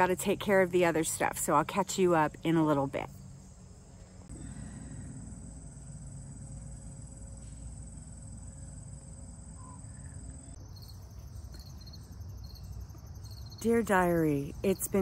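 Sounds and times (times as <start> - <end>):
low steady rumble: 0.0 - 11.4
insects chirping: 0.0 - 15.0
insects trilling: 0.0 - 15.0.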